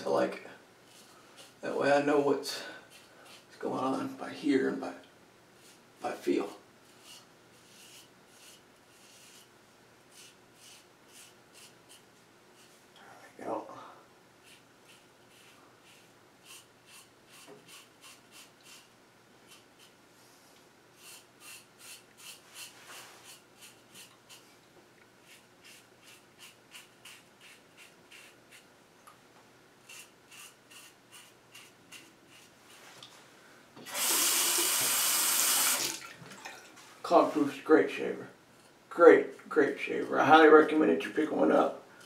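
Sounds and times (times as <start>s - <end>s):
razor scraping stubble: 21.0s - 24.4s, 25.2s - 28.6s, 29.8s - 32.5s.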